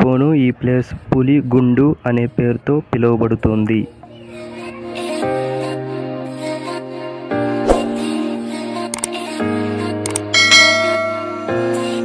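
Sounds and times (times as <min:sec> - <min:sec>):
background music with sustained chords: 0:02.1 - 0:12.0
bright bell ding: 0:10.4 - 0:11.5.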